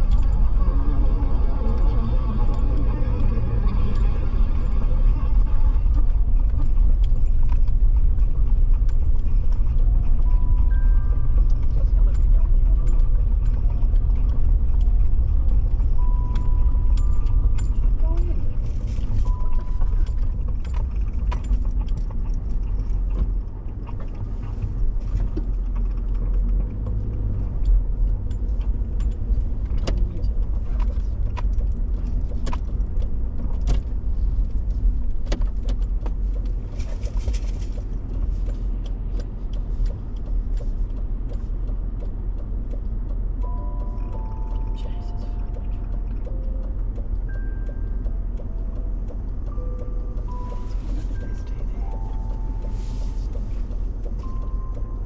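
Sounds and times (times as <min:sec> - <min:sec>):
small clicks and rattles: 0:00.0 - 0:52.4
tyres and engine rumble: 0:00.0 - 0:55.0.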